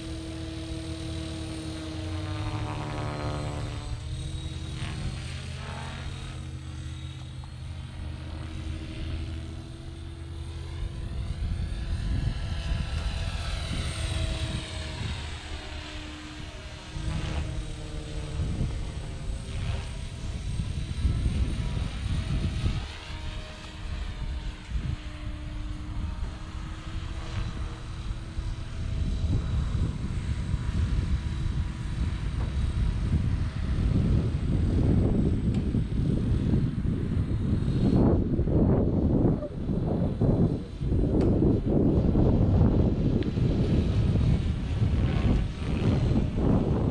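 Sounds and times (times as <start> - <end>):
rc helicopter rotor whine: 0.0 - 46.9
wind on microphone: 0.0 - 46.9.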